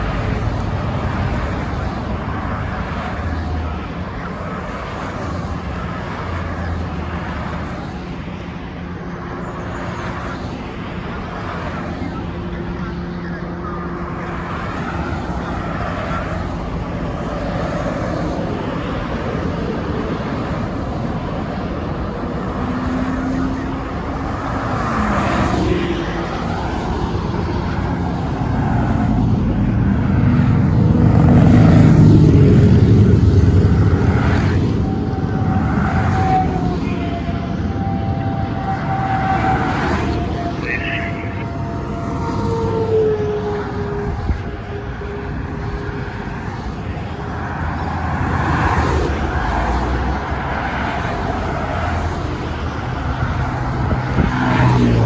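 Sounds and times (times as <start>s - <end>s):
highway traffic passing: 0.0s - 55.0s.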